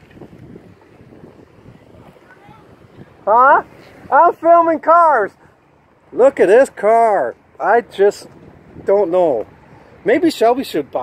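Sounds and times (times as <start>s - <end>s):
wind rumbling on microphone: 0.0s - 5.4s, 7.1s - 11.0s
faint indistinct voices: 1.6s - 4.1s.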